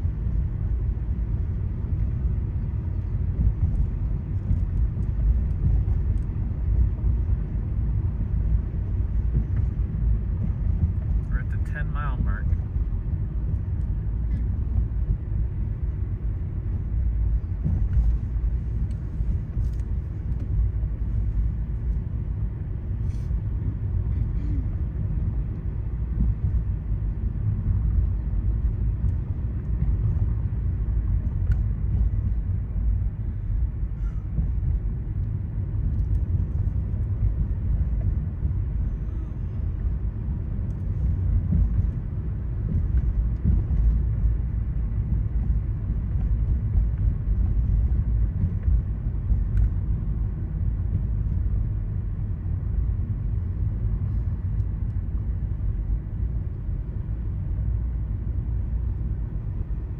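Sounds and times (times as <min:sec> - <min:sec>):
car engine and tyre rumble: 0:00.0 - 0:59.9.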